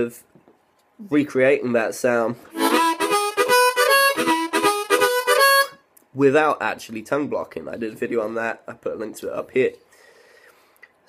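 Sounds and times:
harmonica shuffle chords: 2.5s - 5.9s.

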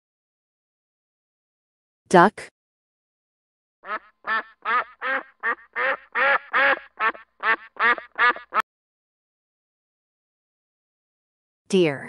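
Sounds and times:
duck quacking: 3.8s - 8.6s.

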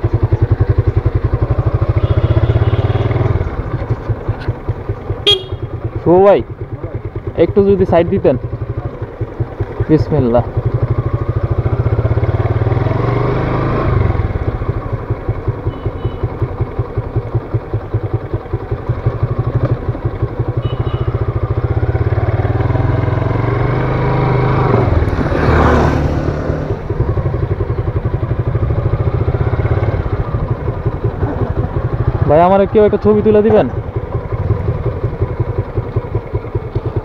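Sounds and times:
motorcycle engine at low revs: 0.0s - 37.0s.

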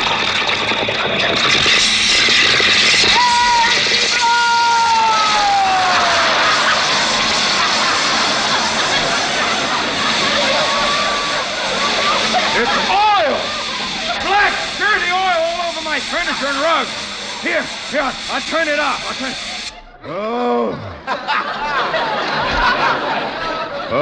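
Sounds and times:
furnace rushing roar: 0.0s - 23.9s
falling whistles: 3.0s - 15.2s
voices and laughter: 5.9s - 24.0s.

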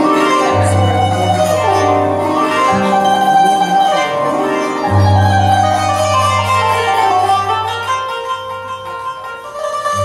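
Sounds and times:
qanun plucking quick runs: 0.0s - 10.0s.

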